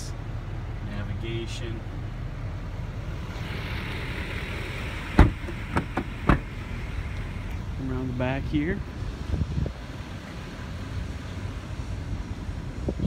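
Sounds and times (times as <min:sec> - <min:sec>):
steady low rumble: 0:00.0 - 0:13.0
truck door shutting: 0:03.4 - 0:07.5.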